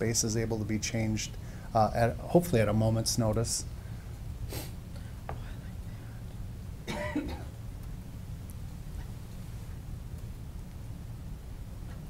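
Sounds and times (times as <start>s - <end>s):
steady low hum: 0.0s - 12.0s
short cough: 6.9s - 7.5s.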